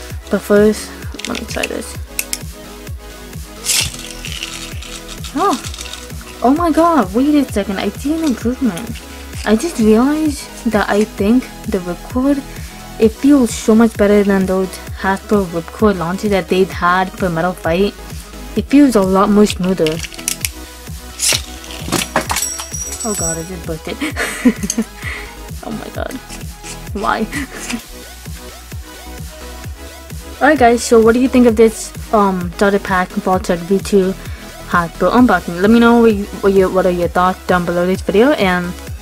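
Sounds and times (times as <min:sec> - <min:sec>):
background music with beat: 0:00.0 - 0:32.6
spinning top clinks and knocks: 0:01.2 - 0:02.5, 0:03.6 - 0:06.4, 0:08.2 - 0:09.6, 0:19.5 - 0:20.6, 0:21.2 - 0:23.6
ripcord zip: 0:03.6 - 0:09.9, 0:19.2 - 0:23.4, 0:26.2 - 0:27.9.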